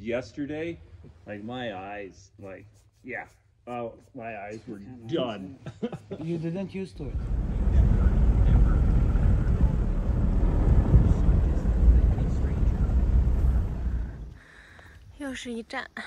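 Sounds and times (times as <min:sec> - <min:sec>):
wind buffeting microphone: 0:07.0 - 0:14.4.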